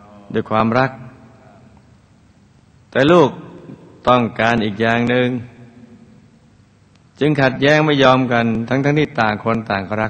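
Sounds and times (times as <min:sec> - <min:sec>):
faint background hiss: 0:00.0 - 0:10.0
man narrating: 0:04.0 - 0:05.6, 0:07.2 - 0:10.0.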